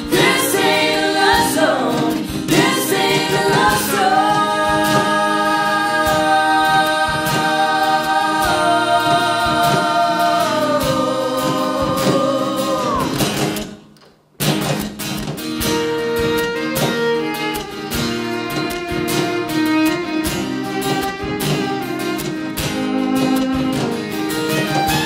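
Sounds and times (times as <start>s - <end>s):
fiddle: 0.0s - 12.2s, 15.6s - 25.0s
voices singing in harmony: 0.0s - 13.7s
acoustic guitar: 0.0s - 25.0s.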